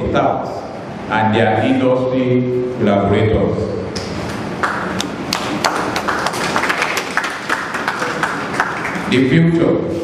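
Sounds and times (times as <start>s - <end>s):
audience clapping: 4.2s - 9.2s.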